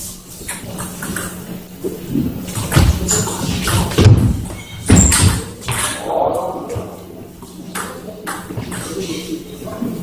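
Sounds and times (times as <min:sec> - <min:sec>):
voices in a hall: 0:05.0 - 0:10.0.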